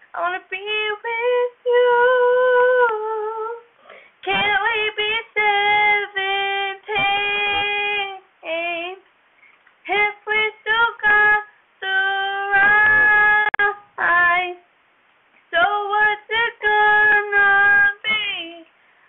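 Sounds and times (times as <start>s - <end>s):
girl singing unaccompanied: 0.0s - 9.1s, 9.8s - 14.7s, 15.5s - 18.8s
singer breathing: 3.8s - 4.2s, 18.7s - 19.0s.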